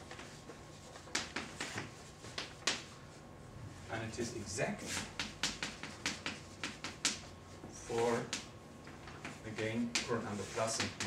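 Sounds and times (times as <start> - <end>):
chalk tapping on blackboard: 0.0 - 3.1, 4.8 - 11.0.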